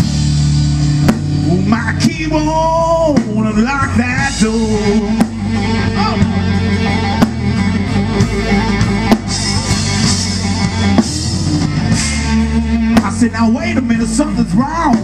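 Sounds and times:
blues band playing: 0.0 - 15.0
electric guitar bent notes: 0.0 - 15.0.

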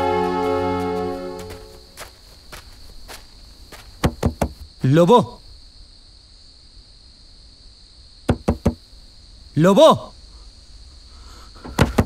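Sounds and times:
knocks on wooden door: 4.0 - 4.6, 8.3 - 8.8, 11.7 - 12.0.

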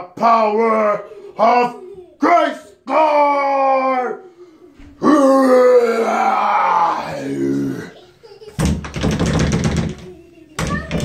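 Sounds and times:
man crying out: 0.6 - 4.2, 5.0 - 8.0.

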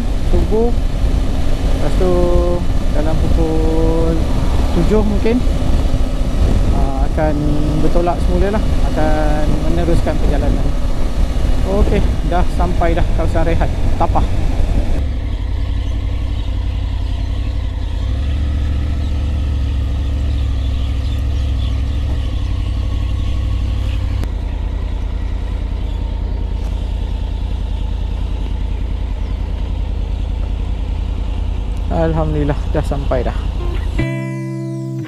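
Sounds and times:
motorcycle engine low rumble: 0.0 - 34.1.

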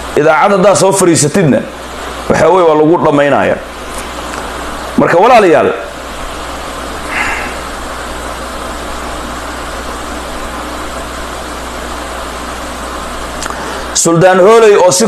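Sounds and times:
background hiss: 0.0 - 15.0
low hum: 1.6 - 14.4
faint breath: 7.1 - 7.7, 13.5 - 14.0.

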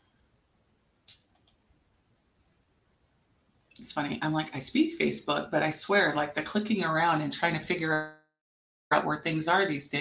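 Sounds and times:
computer mouse clicks: 1.0 - 1.6.

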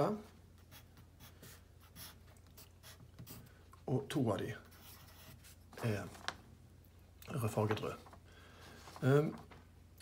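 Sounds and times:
pen scratching on paper: 0.6 - 3.5, 4.7 - 5.6.

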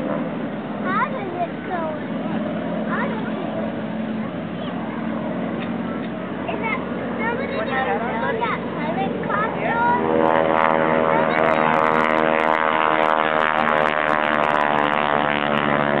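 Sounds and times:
propeller airplane engine droning: 0.0 - 16.0
voices: 0.8 - 12.3.

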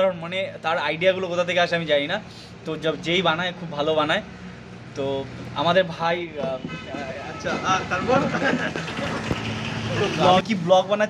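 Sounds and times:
steady background noise: 0.0 - 11.0
man talking: 5.0 - 9.2, 10.0 - 11.0.

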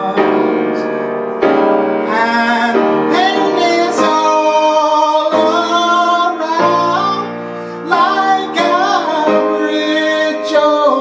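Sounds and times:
grand piano accompaniment: 0.0 - 11.0.

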